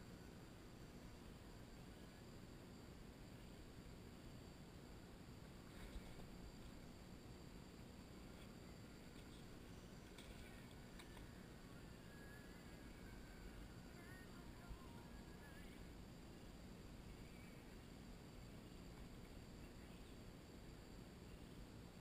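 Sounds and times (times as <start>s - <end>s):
faint bird chirps: 8.4s - 20.4s.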